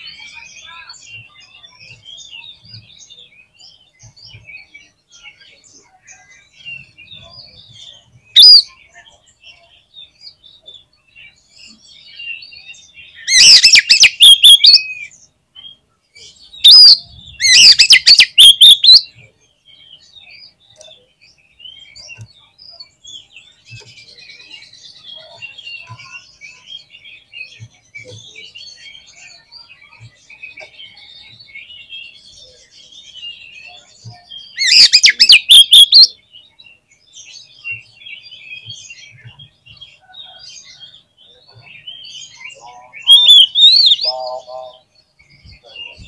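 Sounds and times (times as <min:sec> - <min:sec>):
faint bird chirping: 0:00.0 - 0:46.0
songbird whistling and chattering: 0:03.2 - 0:09.8, 0:11.7 - 0:19.3, 0:25.2 - 0:46.0.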